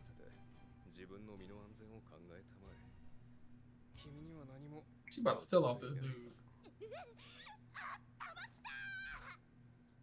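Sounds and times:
woman's high-pitched cries: 6.8 - 9.4.

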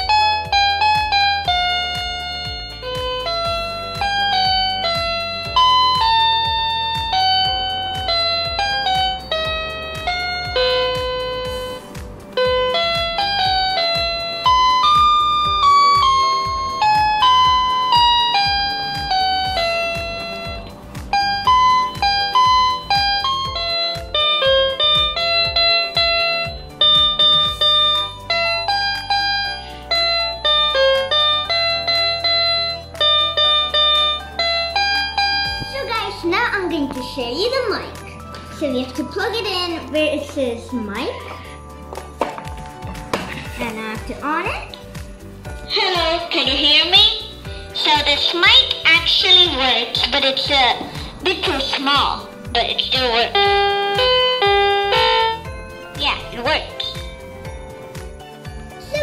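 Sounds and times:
toy electronic keyboard melody: 0.0 - 11.8, 12.4 - 40.1, 52.6 - 57.7.

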